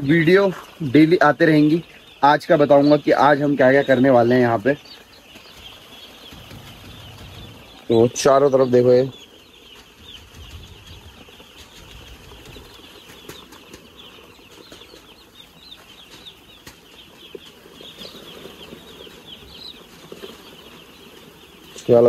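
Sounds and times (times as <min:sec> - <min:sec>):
chicks peeping: 0:00.0 - 0:22.0.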